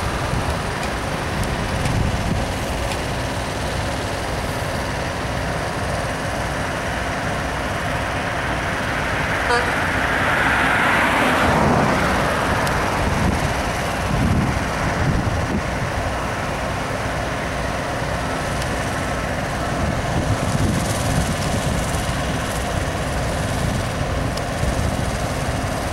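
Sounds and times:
diesel trucks low rumble: 0.0 - 25.9.

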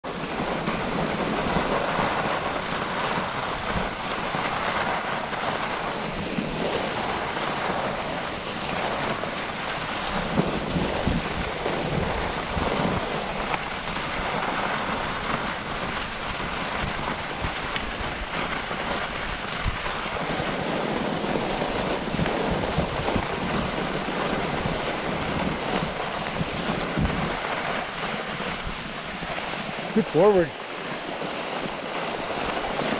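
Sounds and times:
wind on microphone: 0.0 - 32.9
skis hissing over snow: 0.1 - 32.9.

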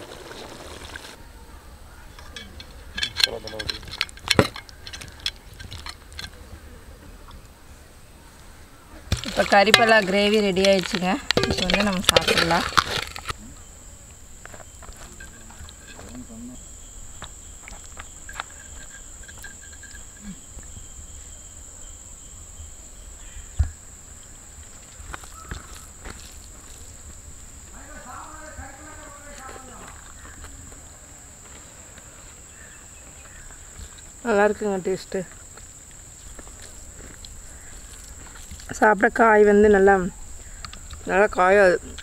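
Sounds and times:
high-pitched insect drone: 9.2 - 42.0.

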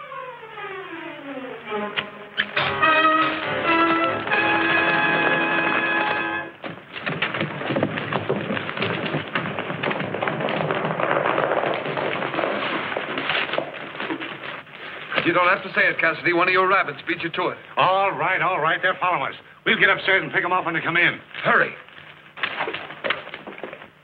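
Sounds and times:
orchestral film music: 0.0 - 6.6
horse hoofbeats: 2.0 - 16.7, 21.3 - 24.0.

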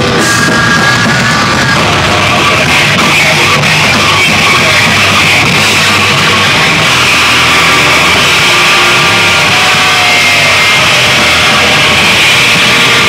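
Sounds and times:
held high guitar tones: 0.0 - 13.0
loud punk metal band playing: 0.0 - 13.0.

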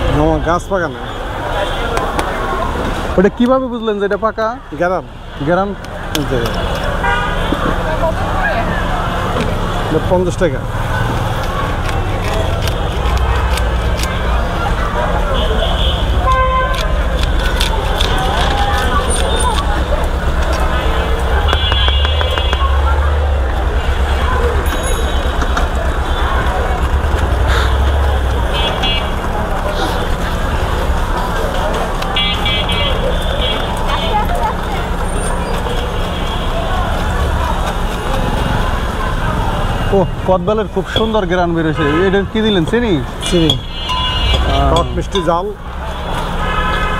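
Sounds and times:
background chatter: 0.0 - 46.9
traffic rumble: 0.0 - 46.9
car horn toot: 7.0 - 7.7, 21.4 - 22.8, 41.0 - 46.9.

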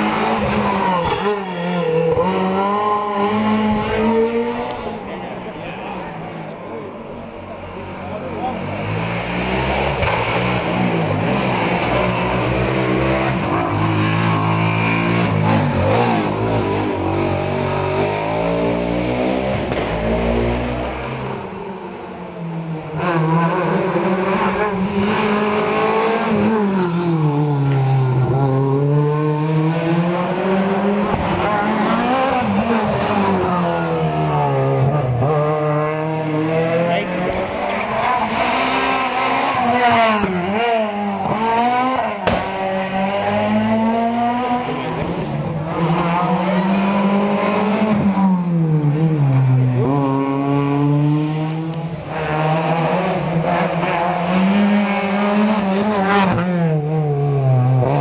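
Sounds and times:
rally car engine revving: 0.0 - 58.0.

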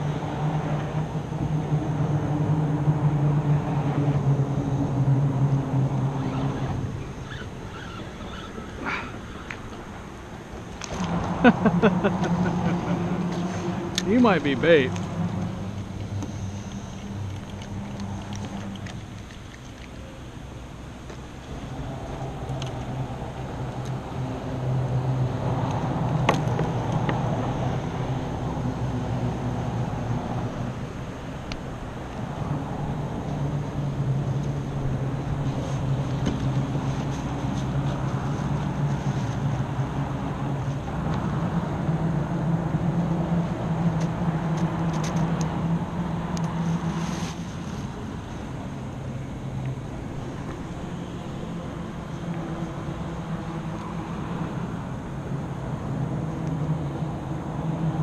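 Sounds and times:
engine humming: 0.0 - 58.0.

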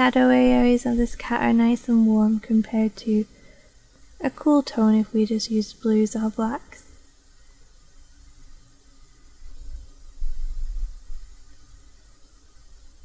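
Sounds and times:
faint steady hiss: 0.0 - 13.0.

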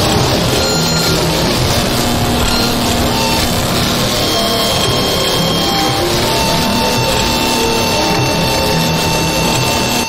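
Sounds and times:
faint flickering tones: 0.0 - 10.0
loud wall of distorted noise: 0.0 - 10.0.

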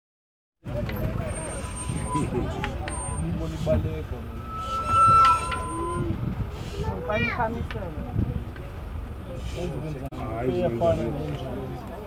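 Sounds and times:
people talking: 0.7 - 12.0
steady low rumble: 0.8 - 6.6.

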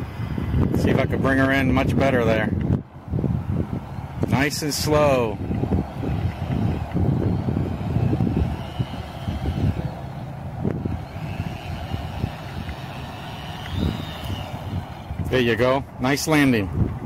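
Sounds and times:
wind rumble on microphone: 0.0 - 17.0
small electric motor whining: 2.9 - 16.9.

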